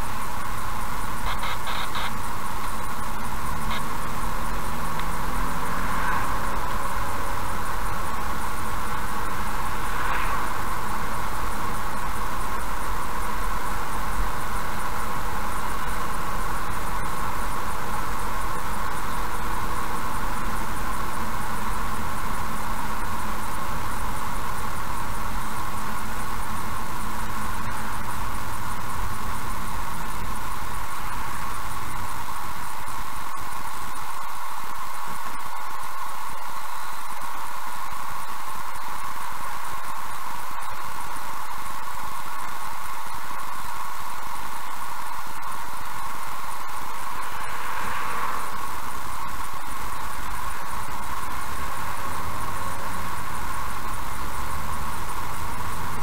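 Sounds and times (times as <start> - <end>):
road and engine rumble: 0.0 - 56.0
steady hiss: 0.0 - 56.0.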